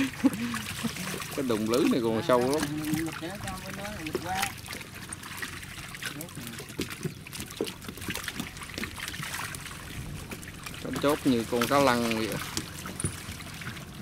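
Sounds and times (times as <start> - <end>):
fish thrashing in a net: 0.0 - 14.0
low steady hum: 0.0 - 14.0
water trickling and splashing: 0.0 - 14.0.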